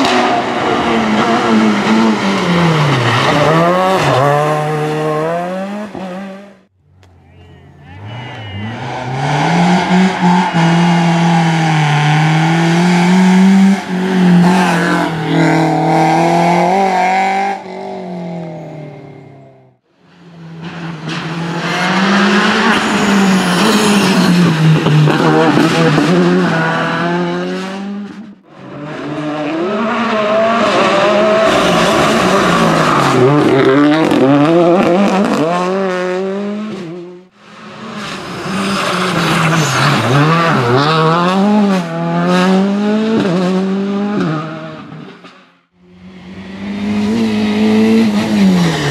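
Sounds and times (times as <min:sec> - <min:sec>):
rally car engines revving: 0:00.0 - 0:07.2, 0:08.0 - 0:48.9.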